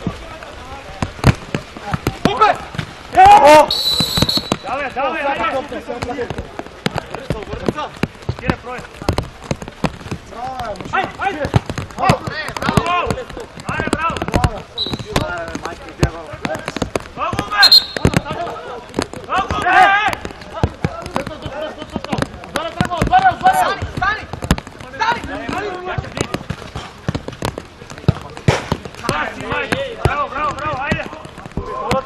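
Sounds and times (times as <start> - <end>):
players shouting: 0.1 - 6.4, 10.8 - 26.6
ball kicked on artificial turf: 0.9 - 4.8, 6.0 - 32.0.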